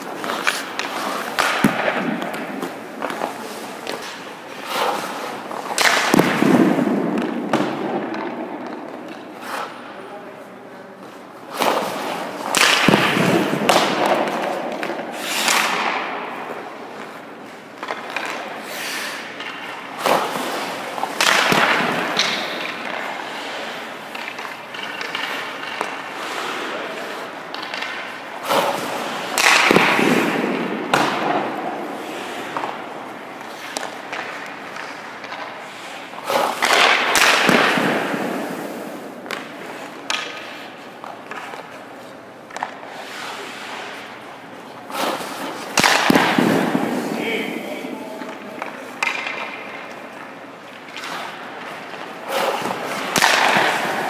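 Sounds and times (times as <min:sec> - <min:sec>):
skates scraping ice: 0:00.0 - 0:54.0.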